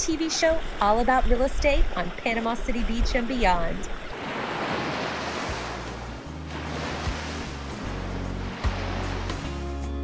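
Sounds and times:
ocean surf rushing: 4.1 - 9.8.

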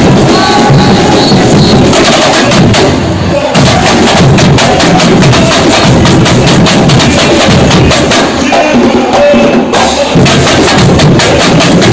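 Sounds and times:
surdo bass drums: 0.0 - 3.0, 3.6 - 8.7, 10.0 - 11.9
samba drums playing: 0.0 - 11.9.

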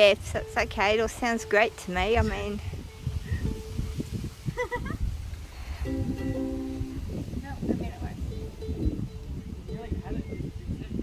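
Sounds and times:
ukulele chord strummed: 0.2 - 3.9, 5.8 - 10.4.

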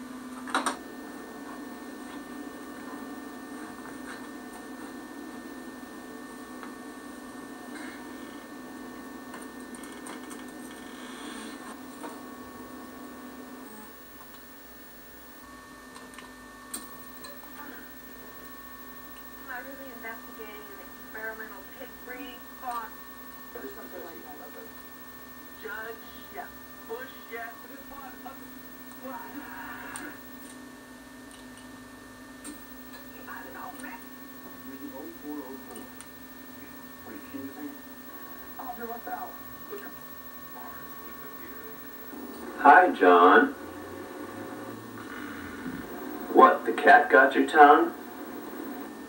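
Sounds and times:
thin high whine: 0.0 - 30.8, 32.4 - 49.0
camcorder electrical hum and hiss: 0.0 - 49.0.

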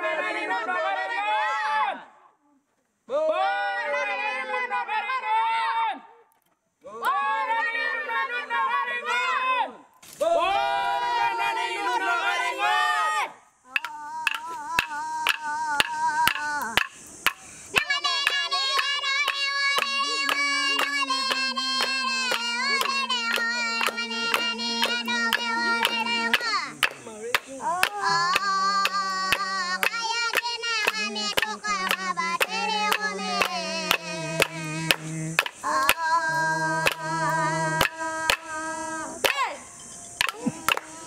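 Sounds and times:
person singing: 13.7 - 39.6, 40.2 - 41.0
wooden clapsticks striking: 13.8 - 36.0, 40.2 - 40.9.

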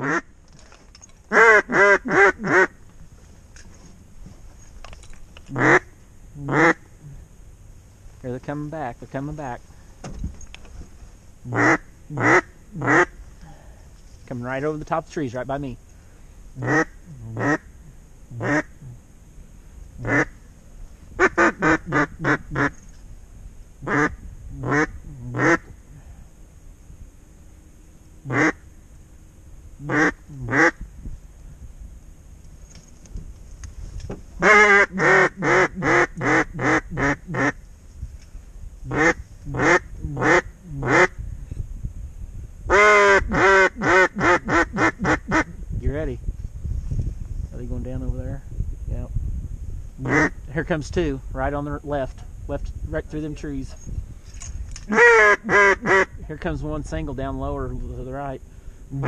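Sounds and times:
duck call quacking: 0.0 - 0.3, 1.3 - 2.8, 5.5 - 6.8, 11.5 - 13.2, 16.6 - 17.7, 18.4 - 18.7, 20.0 - 20.4, 21.2 - 22.7, 23.8 - 25.7, 28.2 - 28.6, 29.8 - 30.8, 34.4 - 37.6, 38.9 - 41.1, 42.7 - 45.5, 50.0 - 50.4, 54.9 - 56.2.

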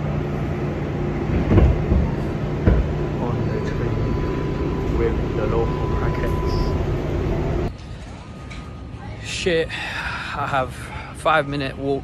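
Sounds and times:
subway train rumbling: 0.0 - 11.5
sudden thump: 1.3 - 2.9.

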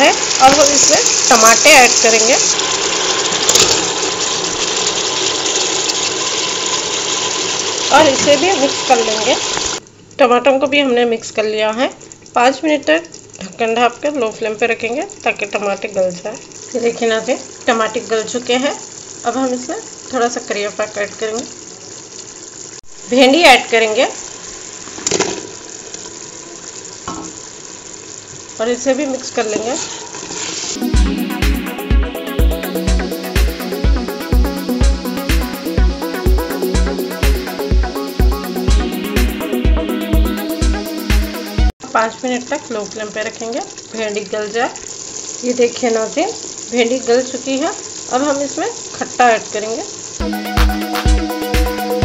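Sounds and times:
broth boiling hard: 0.0 - 9.9, 11.8 - 52.0
gravy bubbling in a pot: 0.0 - 30.8, 41.9 - 50.2.

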